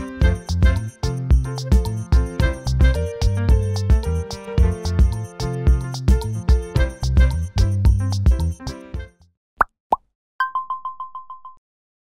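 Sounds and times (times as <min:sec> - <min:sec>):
background music with steady beat: 0:00.0 - 0:09.2.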